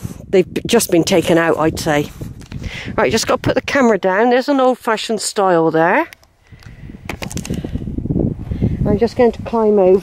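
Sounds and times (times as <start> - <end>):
camera scraping on stone: 6.1 - 7.9
camera knocking on stone: 7.1 - 7.6.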